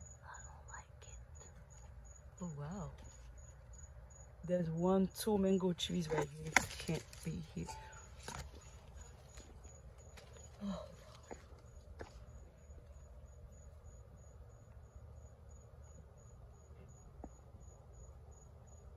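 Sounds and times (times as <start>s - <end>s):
insect chirping: 0.0s - 18.9s
leaves brushed clicks: 6.0s - 10.4s.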